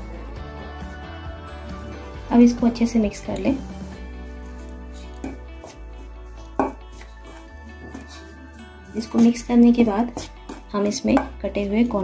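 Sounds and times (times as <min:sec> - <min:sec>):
background music: 0:00.0 - 0:12.0
metal spoon scraping steel bowl: 0:06.5 - 0:11.9.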